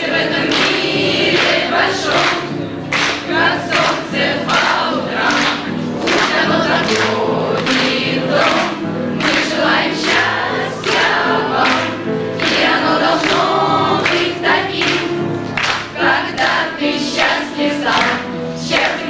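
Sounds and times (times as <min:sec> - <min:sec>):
girls choir singing in unison: 0:00.0 - 0:19.0.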